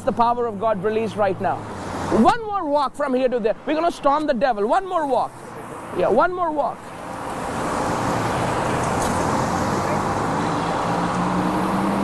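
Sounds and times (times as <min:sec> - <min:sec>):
motor vehicle running close by: 0:07.0 - 0:12.0.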